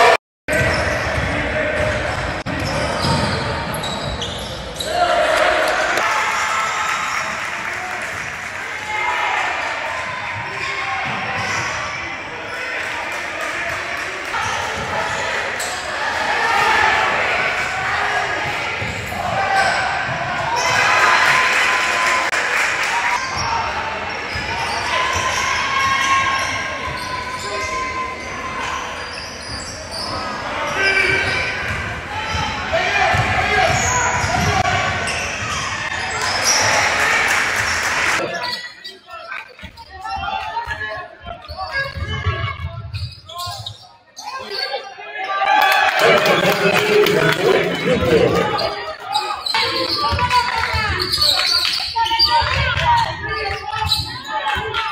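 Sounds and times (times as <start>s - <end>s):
players and spectators calling: 0.0s - 54.9s
basketball bouncing on wooden court: 33.1s - 35.6s.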